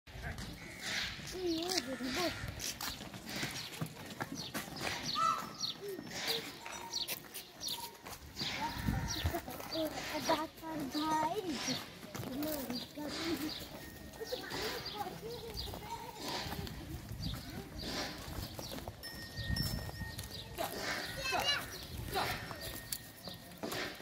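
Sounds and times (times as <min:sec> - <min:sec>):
cattle hooves on dirt: 0:00.1 - 0:24.0
people's voices: 0:00.1 - 0:24.0.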